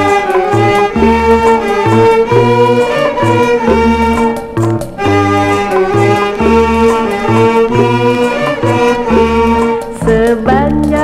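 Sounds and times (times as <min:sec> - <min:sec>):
instrumental orchestra music: 0:00.0 - 0:10.5.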